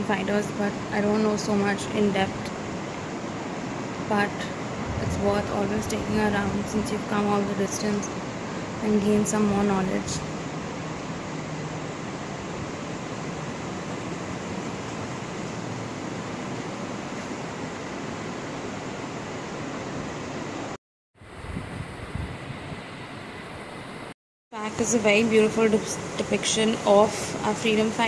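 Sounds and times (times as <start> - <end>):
steady rushing noise: 3.2 - 14.7.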